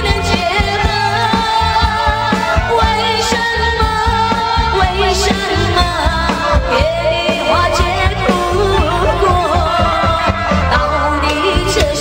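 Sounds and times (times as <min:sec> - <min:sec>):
live band: 0:00.0 - 0:12.0
steady drum beat: 0:00.0 - 0:12.0
woman singing pop ballad: 0:00.0 - 0:12.0.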